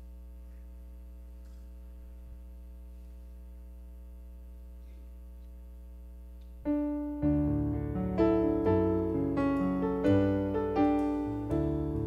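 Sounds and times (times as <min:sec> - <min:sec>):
buzzy electrical mains hum: 0:00.0 - 0:12.0.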